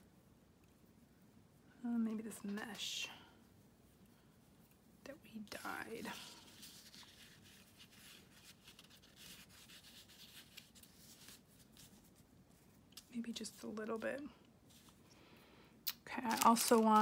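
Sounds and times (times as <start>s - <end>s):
mesh rustling and rubbing: 3.5s - 15.0s.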